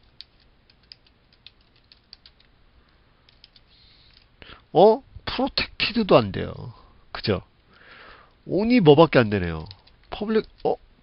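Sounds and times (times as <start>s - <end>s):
keyboard typing clicks: 0.2s - 2.5s.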